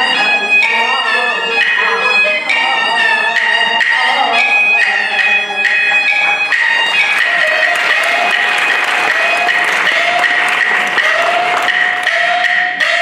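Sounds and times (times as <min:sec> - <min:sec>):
high bowed fiddle: 0:00.0 - 0:13.0
wooden percussion clacks: 0:03.3 - 0:13.0.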